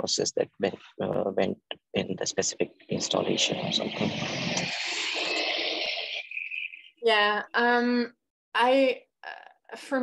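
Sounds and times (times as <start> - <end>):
high-pitched rushing hiss: 2.9 - 6.7.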